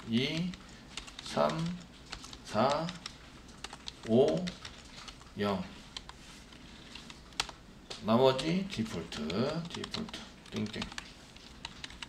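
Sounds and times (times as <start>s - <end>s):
computer keyboard keystrokes: 0.0s - 5.3s, 6.9s - 12.0s.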